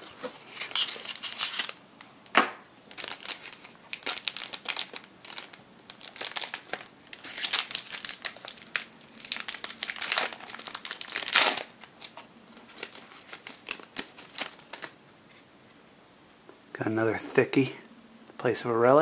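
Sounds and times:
foil wrapper crinkling: 0.2 - 1.8, 2.9 - 15.0.

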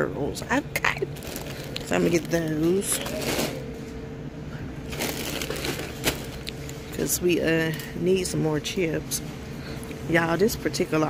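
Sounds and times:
faint hum: 0.0 - 11.0
plastic chip bag crinkling: 1.0 - 3.7, 4.8 - 6.9.

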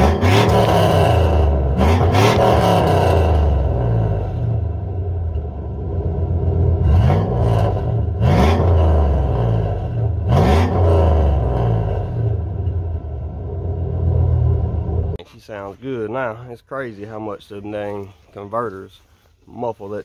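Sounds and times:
engine revving: 0.0 - 15.2.

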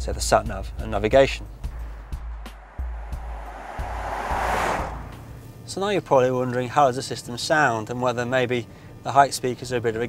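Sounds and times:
rush of noise: 1.8 - 5.6.

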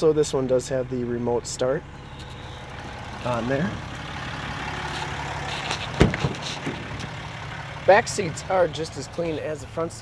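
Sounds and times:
truck door latch clunking open: 5.6 - 7.2.

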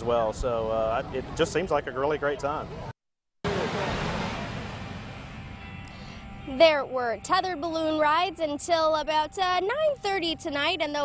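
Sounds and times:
propane burners roaring: 3.5 - 5.9.

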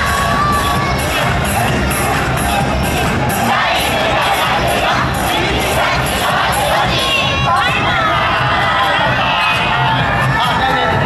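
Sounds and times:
loud dance music with beat: 0.0 - 11.0
many voices shouting together: 0.0 - 11.0.

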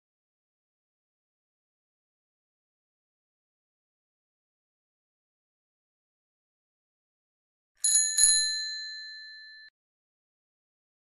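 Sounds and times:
bicycle bell ringing: 7.8 - 9.7.

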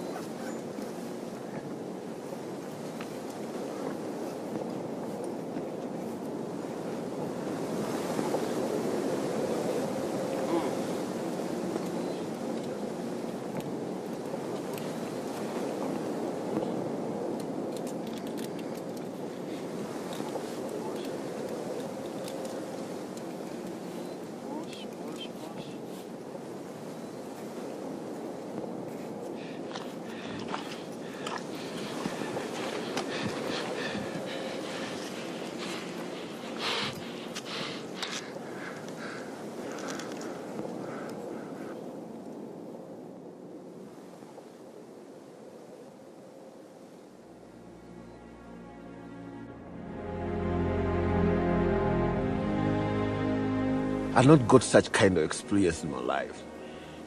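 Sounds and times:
steady rushing noise: 11.1 - 41.7, 47.1 - 57.0.

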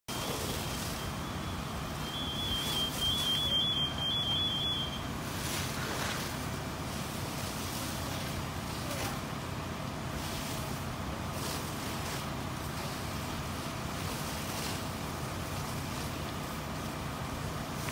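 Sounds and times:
vehicle engine running: 0.0 - 17.9
hose streams flowing: 0.1 - 17.9.

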